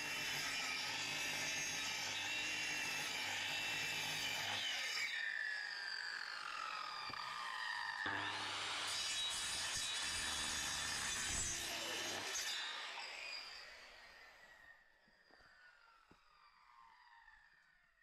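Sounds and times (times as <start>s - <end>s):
circular saw cutting wood: 0.0s - 14.8s
saw blade winding down: 2.8s - 14.7s.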